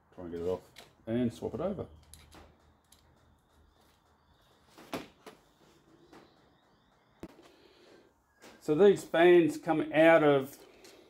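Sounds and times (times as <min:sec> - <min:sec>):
small parts clicking and tapping: 0:02.0 - 0:04.5.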